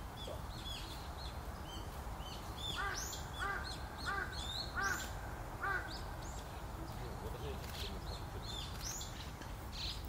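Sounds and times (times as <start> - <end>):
loud bird calls: 0.0 - 10.0.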